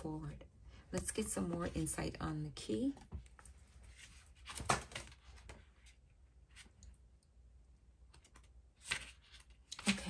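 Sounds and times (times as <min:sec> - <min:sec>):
cards rustling: 0:08.1 - 0:10.0.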